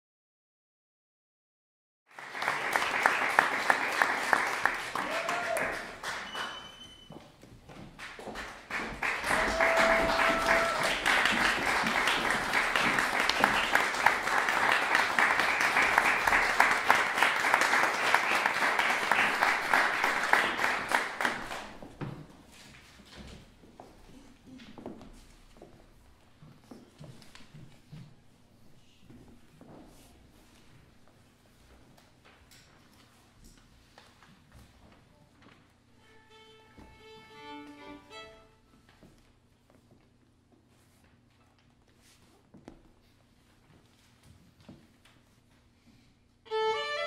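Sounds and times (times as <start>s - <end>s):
audience applauding: 2.1s - 7.1s, 8.0s - 21.8s.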